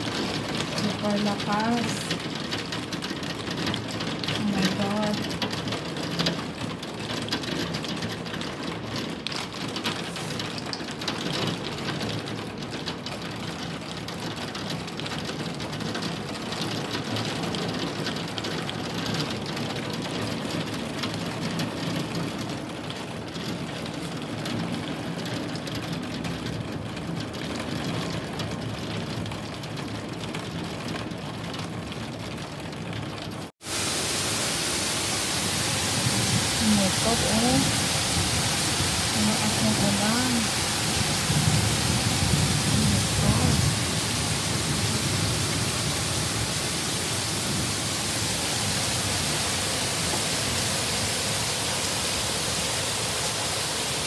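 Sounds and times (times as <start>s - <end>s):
heavy rain pouring: 0.0s - 54.0s.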